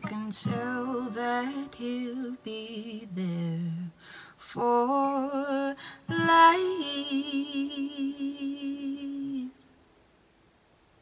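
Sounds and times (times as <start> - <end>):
woman singing with vibrato: 0.0 - 9.7.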